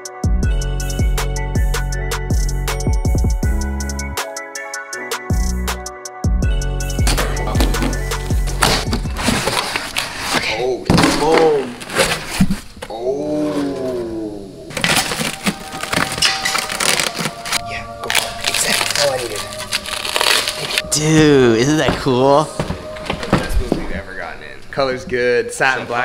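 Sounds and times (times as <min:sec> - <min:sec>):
background music: 0:00.0 - 0:26.0
plastic wrap crinkling and tearing: 0:07.4 - 0:12.9, 0:14.7 - 0:21.0.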